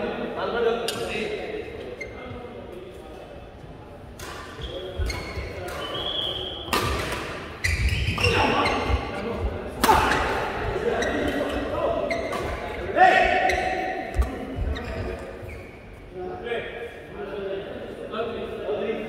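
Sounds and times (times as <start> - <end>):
sneakers squeaking on floor: 1.8 - 2.6, 4.2 - 16.1.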